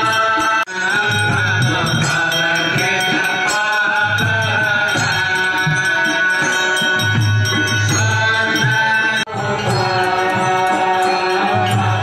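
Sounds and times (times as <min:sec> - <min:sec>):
devotional chanting with music: 0:00.0 - 0:12.0.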